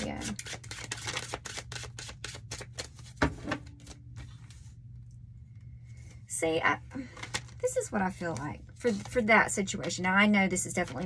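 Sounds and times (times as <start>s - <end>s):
cards being shuffled: 0.0s - 4.7s, 7.1s - 7.6s, 8.2s - 10.0s.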